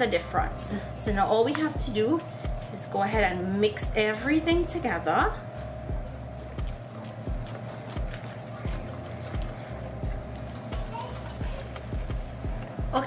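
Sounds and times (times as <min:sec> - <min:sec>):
background music with low beat: 0:00.0 - 0:13.0
batter stirred in glass bowl: 0:01.6 - 0:13.0.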